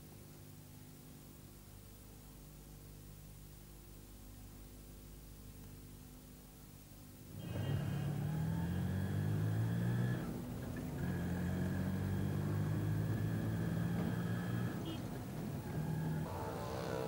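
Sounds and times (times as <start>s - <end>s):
faint hum: 0.0s - 17.0s
vehicle engine running: 7.3s - 17.0s.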